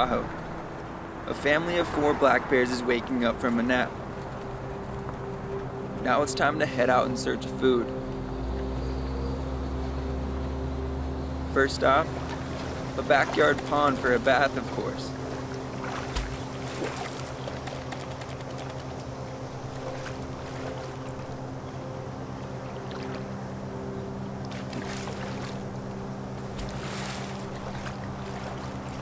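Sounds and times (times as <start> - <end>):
soft sustained background music: 0.0 - 29.0
water splashing: 11.5 - 21.8, 22.5 - 23.4, 24.4 - 29.0.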